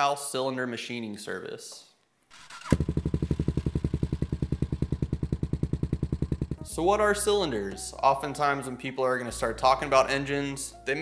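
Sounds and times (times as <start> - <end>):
motorcycle engine idling: 2.3 - 6.8.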